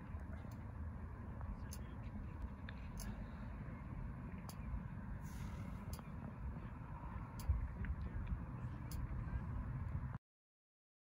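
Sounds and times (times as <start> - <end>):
low outdoor rumble: 0.0 - 10.2.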